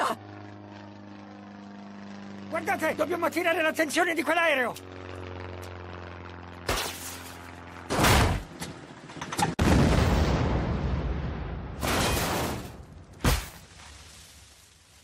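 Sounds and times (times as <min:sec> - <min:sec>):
propeller plane engine droning: 0:00.0 - 0:09.6
explosion with rumbling blast: 0:09.6 - 0:12.7.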